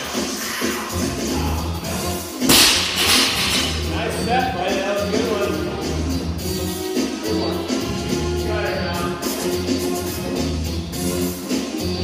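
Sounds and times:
background music: 0.0 - 12.0
barbell crashing onto floor: 2.5 - 3.8.

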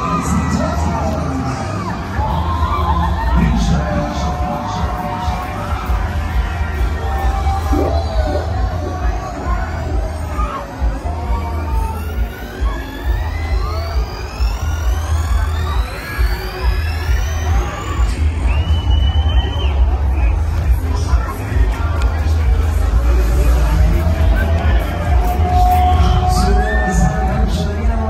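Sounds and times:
crowd noise: 0.0 - 28.0
fairground ride music: 0.0 - 28.0.

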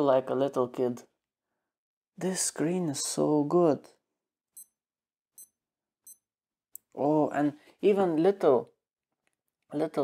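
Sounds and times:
digital watch beeps: 4.6 - 4.8, 5.4 - 6.3.

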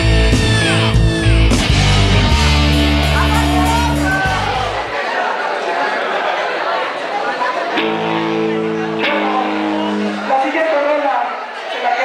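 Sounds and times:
amplified guitar chords ringing: 0.0 - 4.9, 7.8 - 10.4
background chatter: 2.2 - 12.0.

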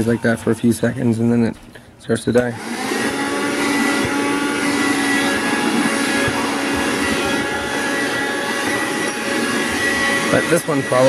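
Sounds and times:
hand vacuum running: 0.0 - 0.6, 2.5 - 11.0.

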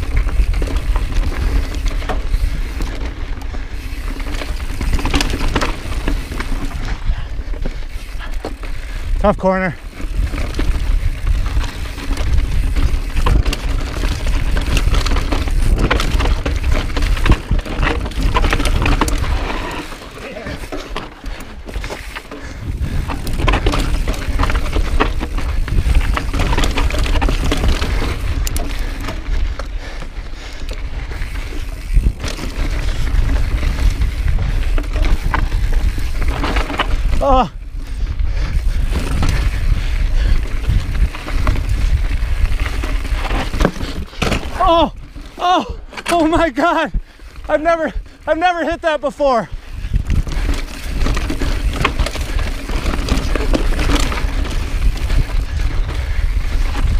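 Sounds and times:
bike clattering and rattling: 0.0 - 56.9
bike tyres crunching over rock: 0.0 - 56.9
wind on microphone: 9.9 - 20.8, 21.4 - 45.9, 49.4 - 56.9.

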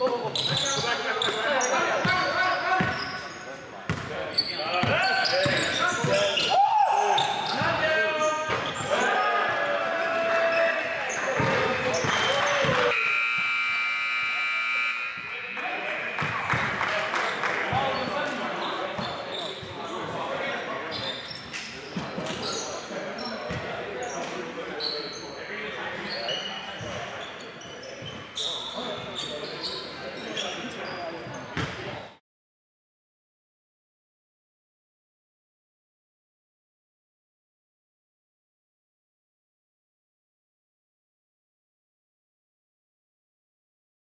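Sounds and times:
voices echoing in gym: 0.0 - 32.2
basketball bouncing: 3.9 - 4.1, 11.4 - 13.5, 16.2 - 16.8
scoreboard buzzer: 12.9 - 16.3.

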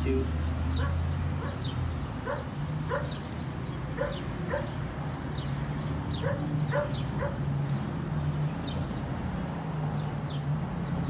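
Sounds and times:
dog yipping: 0.8 - 1.6, 2.2 - 3.2, 4.0 - 4.8, 6.2 - 7.4.

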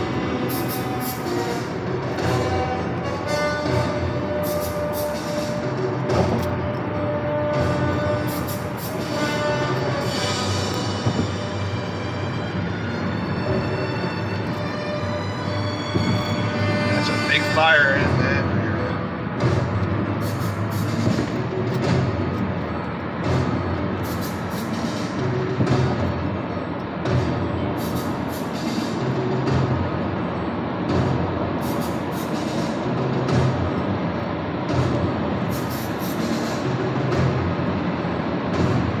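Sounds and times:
car road noise on highway: 0.0 - 39.0
drum-heavy music: 0.0 - 39.0.

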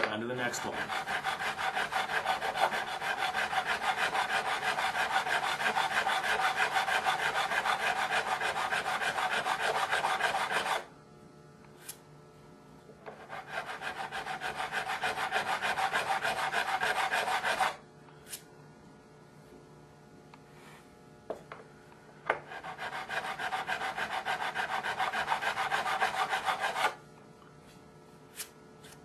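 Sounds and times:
file rasping on metal: 0.4 - 10.9, 13.1 - 17.8, 22.4 - 27.0.

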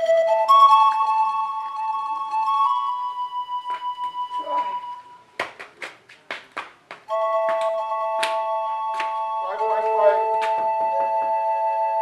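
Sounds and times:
held flute note: 0.0 - 5.2, 7.1 - 12.0.

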